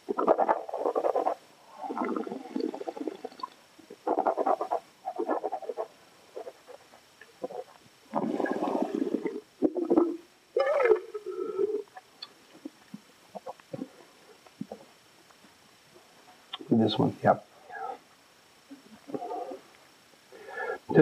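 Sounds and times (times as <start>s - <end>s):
wine being slurped: 7.5s - 10.1s.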